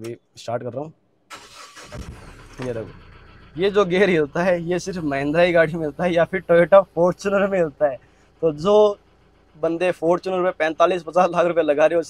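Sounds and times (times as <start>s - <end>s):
starter motor cranking: 1.3s - 6.7s
diesel engine rumbling: 1.3s - 12.0s.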